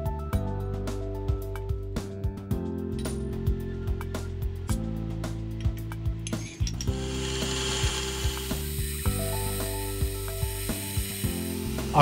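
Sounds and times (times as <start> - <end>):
background music chords: 0.0 - 12.0
steady high hiss: 6.9 - 12.0.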